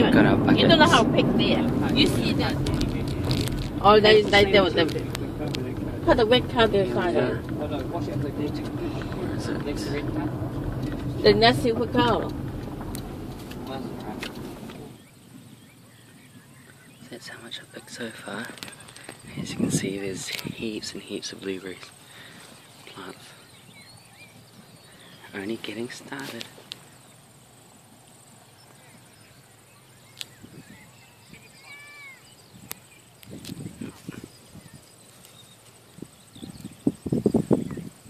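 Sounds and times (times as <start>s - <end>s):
car cabin rumble: 0.0s - 17.0s
quiet open-air background: 0.0s - 38.0s.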